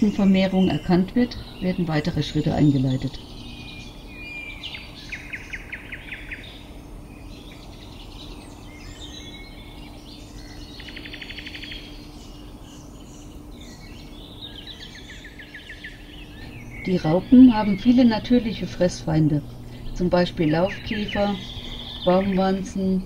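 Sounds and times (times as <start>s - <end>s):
bird chirps: 0.0s - 23.0s
steady low hum: 0.0s - 23.0s
songbird high trill: 7.3s - 23.0s.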